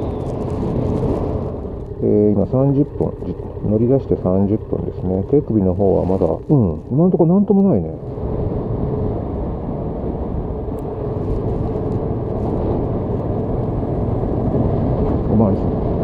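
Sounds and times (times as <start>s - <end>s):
wind noise: 0.0s - 2.0s, 8.0s - 16.0s
motorcycle engine running: 0.0s - 16.0s
road noise: 0.0s - 16.0s.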